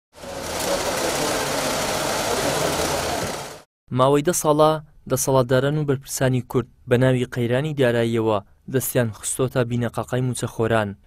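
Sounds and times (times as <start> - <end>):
banknote counting machine running: 0.1 - 3.7.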